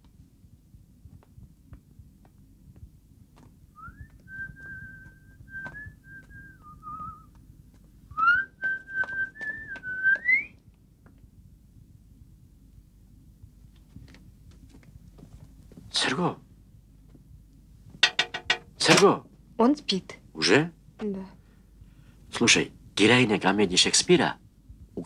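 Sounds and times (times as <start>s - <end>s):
person whistling a tune: 3.8s - 7.3s, 8.2s - 10.5s.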